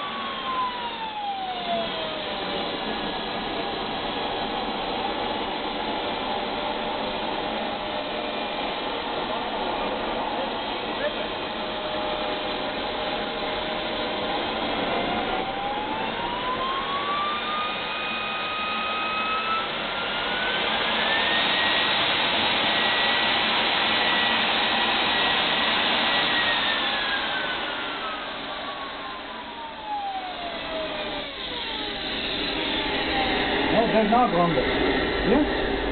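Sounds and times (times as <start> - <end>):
jet turbine whine: 0.0 - 35.9
jet noise rush: 26.4 - 35.9.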